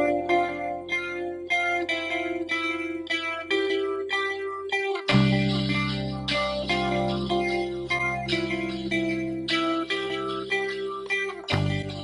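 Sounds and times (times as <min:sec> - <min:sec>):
picked guitar music: 0:00.0 - 0:12.0.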